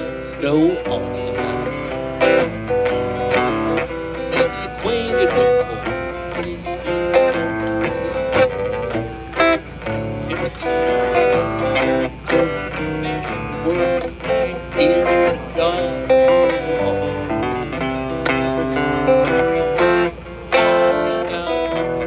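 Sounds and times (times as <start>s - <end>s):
electric guitar picked notes: 0.0s - 22.0s.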